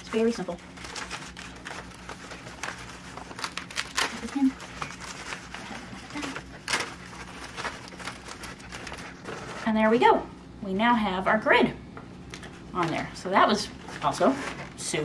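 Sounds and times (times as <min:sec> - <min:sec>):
velcro crackling: 0:00.7 - 0:09.1.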